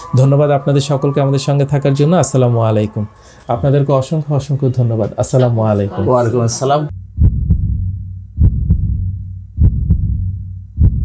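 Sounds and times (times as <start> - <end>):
heartbeat thumps: 6.9 - 11.0
steady low hum: 6.9 - 11.0.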